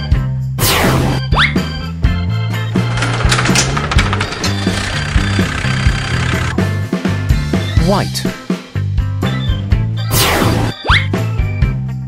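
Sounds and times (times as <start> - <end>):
background music with bass line: 0.0 - 12.0
rattling garage shutter opening: 2.7 - 6.6.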